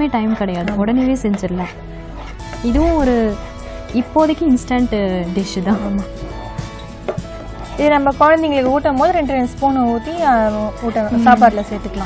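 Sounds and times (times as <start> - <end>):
soft background music: 0.0 - 12.0
woman humming: 2.7 - 3.4.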